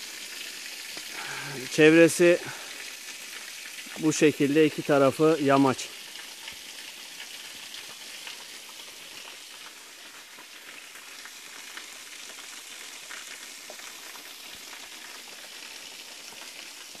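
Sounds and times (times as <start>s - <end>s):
waterfall splashing: 0.0s - 6.1s.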